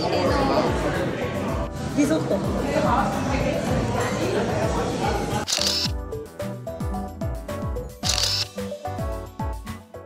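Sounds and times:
restaurant chatter: 0.0 - 5.9
camera shutter: 5.4 - 6.0, 8.0 - 8.6.

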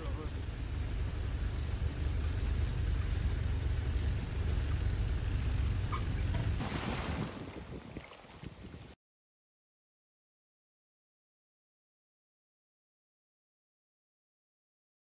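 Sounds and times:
van road noise rumble: 0.0 - 9.0
wind buffeting microphone: 4.0 - 9.0.

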